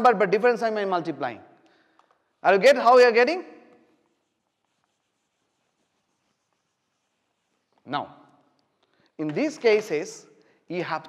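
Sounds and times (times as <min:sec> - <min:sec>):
whiteboard eraser rubbing: 0:03.9 - 0:07.9.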